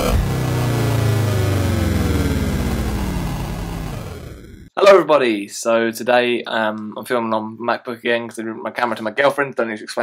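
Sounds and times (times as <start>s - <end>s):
electronic tones gliding downward: 0.0s - 4.7s.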